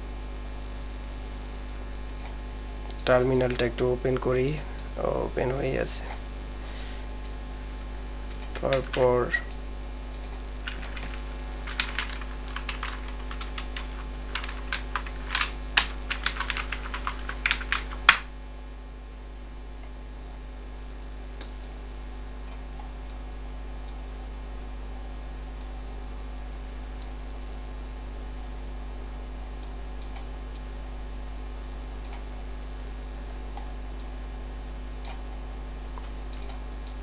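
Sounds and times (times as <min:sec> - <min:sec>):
electrical mains hum: 0:00.0 - 0:37.0
computer keyboard typing: 0:02.9 - 0:03.9, 0:08.3 - 0:09.6, 0:10.2 - 0:18.3.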